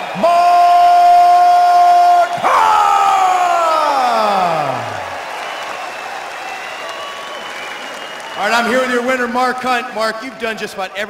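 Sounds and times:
crowd cheering: 0.0 - 10.8.

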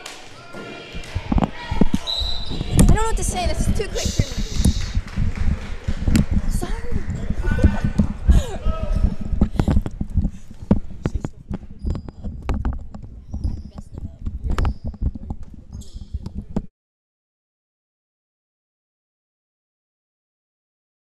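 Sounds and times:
people shouting: 0.4 - 2.8, 7.4 - 9.2
sneaker squeaks: 2.0 - 3.0, 11.6 - 12.4, 13.2 - 16.4.

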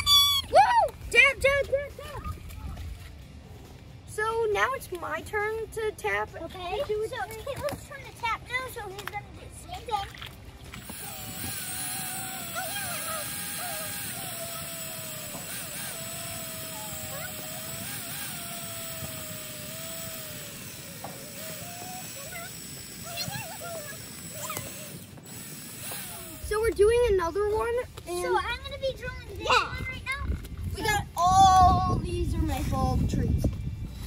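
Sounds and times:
cordless drill boring into wood: 10.8 - 26.7.

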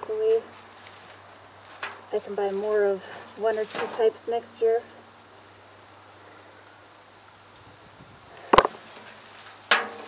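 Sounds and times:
hands rustling potting soil: 0.0 - 4.8.

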